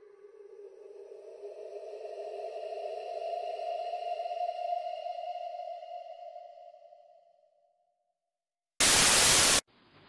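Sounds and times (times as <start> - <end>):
faint steady hiss: 8.8 - 10.0
loud static burst: 8.8 - 10.0.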